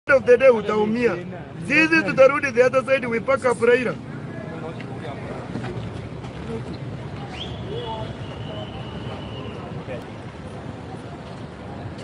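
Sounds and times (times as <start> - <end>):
traffic noise: 0.0 - 12.0.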